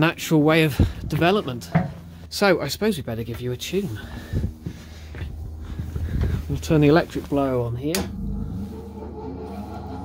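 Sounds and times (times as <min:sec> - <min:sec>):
steady low hum: 0:00.0 - 0:10.0
footsteps: 0:02.9 - 0:08.9.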